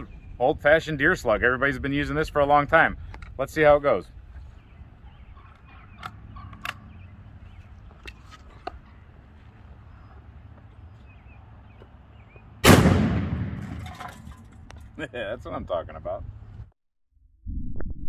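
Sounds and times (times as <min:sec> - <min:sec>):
shotgun firing: 0:12.6 - 0:13.9.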